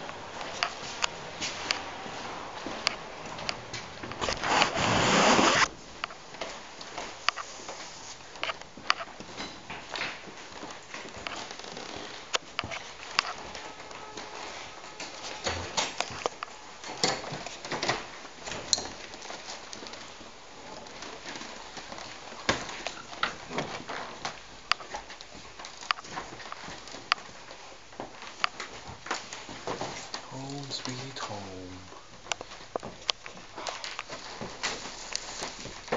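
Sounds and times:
steady background noise: 0.0s - 35.9s
fabric rubbing on microphone: 4.2s - 5.7s.

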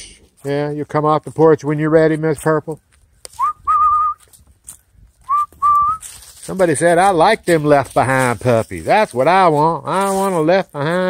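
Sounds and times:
person whistling: 3.4s - 4.2s, 5.2s - 6.0s.

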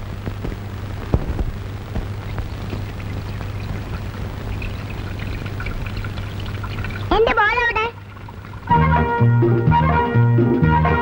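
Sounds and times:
tap water running into basin: 2.0s - 8.9s.

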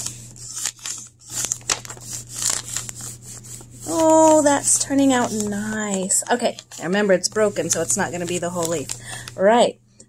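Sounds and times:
crayon scraping over paper: 0.0s - 8.9s.

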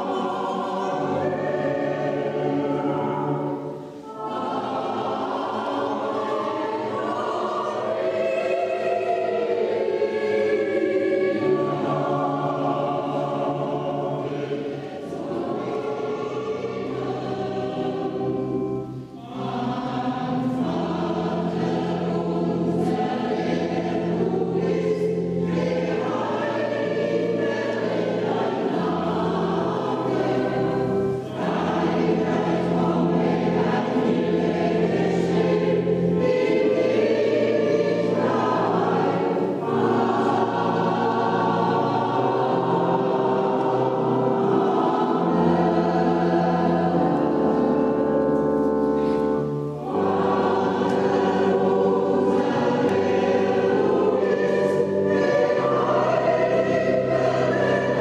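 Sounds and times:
choir singing: 0.0s - 58.0s.

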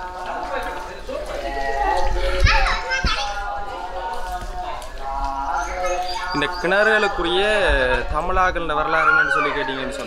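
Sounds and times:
children talking and calling out: 0.1s - 10.0s
child's high cry: 8.9s - 9.9s.

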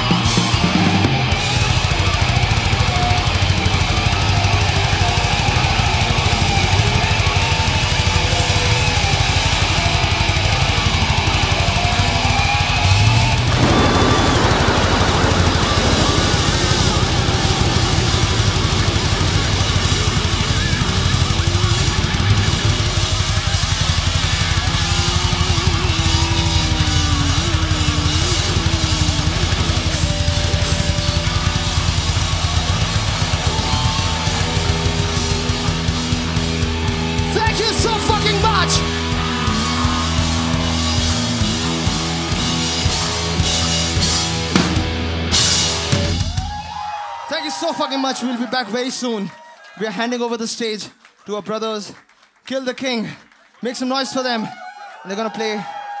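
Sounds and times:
thrash metal band playing: 0.0s - 46.5s
falling sweep: 13.5s - 20.8s.

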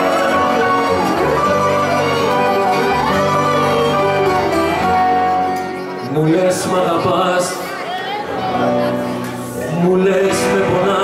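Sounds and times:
steady bass: 0.0s - 5.5s
bouzouki melody: 0.0s - 6.9s
accordion: 0.0s - 9.4s.

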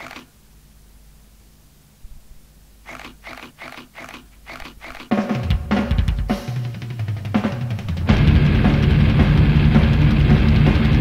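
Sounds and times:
short repeated sounds: 2.8s - 5.2s
heavy metal band playing: 5.3s - 11.0s.

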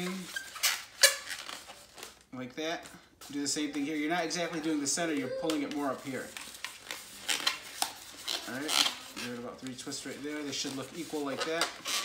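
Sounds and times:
balloon squeaking and rubbing: 0.0s - 2.2s, 3.2s - 12.0s.

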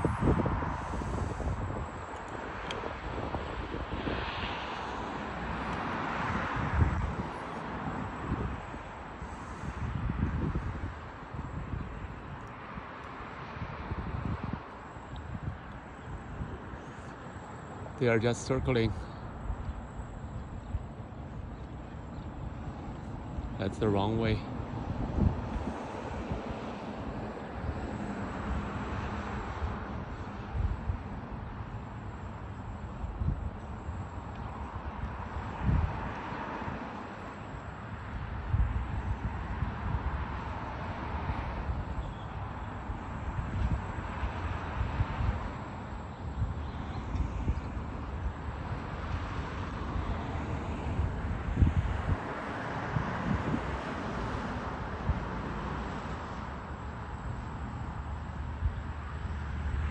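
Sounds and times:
wind on microphone: 0.0s - 17.2s, 24.5s - 37.0s, 37.9s - 55.6s
steady outdoor hiss: 0.0s - 59.9s.

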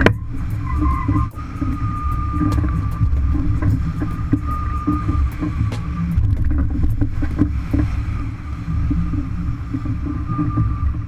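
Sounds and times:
water rushing along hull: 0.0s - 11.0s
wind buffeting microphone: 0.0s - 11.0s.

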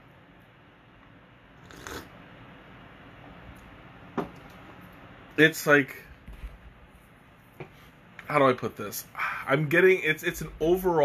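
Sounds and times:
person slurping tea: 1.6s - 2.1s.

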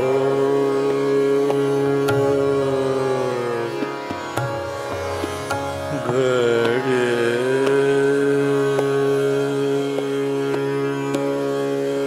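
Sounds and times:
man singing long note: 0.0s - 3.8s, 5.9s - 12.0s
tanpura drone: 0.0s - 12.0s.

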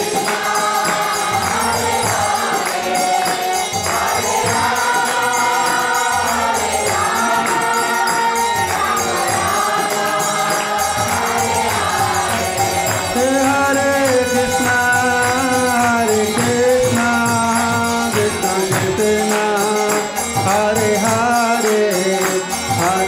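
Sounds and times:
group chanting: 0.0s - 20.3s.

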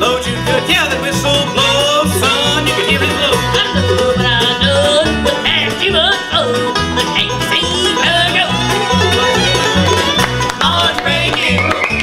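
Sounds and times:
bass notes: 0.0s - 12.0s
bluegrass band playing: 0.0s - 12.0s.

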